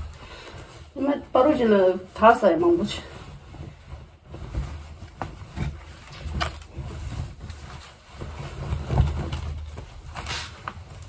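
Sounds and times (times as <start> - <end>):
fabric rustling and whooshing: 0.0 - 11.0.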